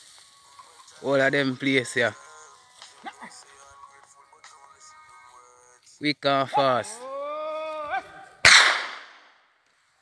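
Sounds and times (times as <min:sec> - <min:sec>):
whip crack: 0:08.4 - 0:09.3.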